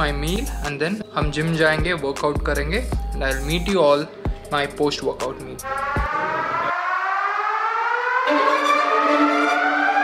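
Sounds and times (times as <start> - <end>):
rising siren-like tone: 5.6 - 10.0.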